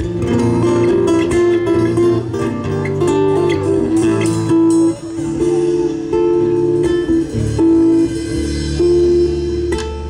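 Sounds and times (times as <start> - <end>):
live band guitar-led folk music: 0.0 - 10.0.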